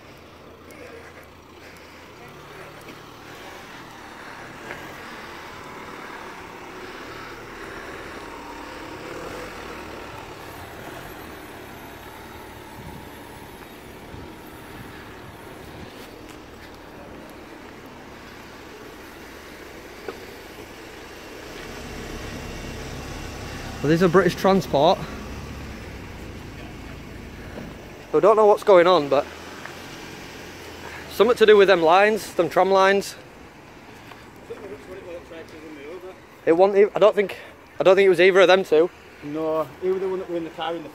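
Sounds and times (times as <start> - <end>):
faint voices: 0.0 - 25.4
distant road traffic hum: 0.0 - 40.9.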